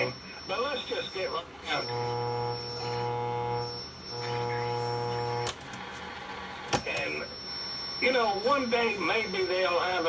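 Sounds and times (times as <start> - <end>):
electrical buzz from radio speaker: 0.0 - 10.0
faint radio static: 0.0 - 10.0.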